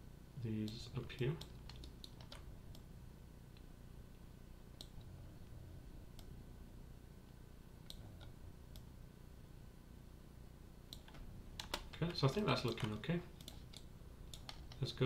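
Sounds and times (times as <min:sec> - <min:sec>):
computer mouse clicks: 0:00.6 - 0:02.9, 0:04.8 - 0:05.2, 0:07.8 - 0:08.9, 0:10.9 - 0:14.9.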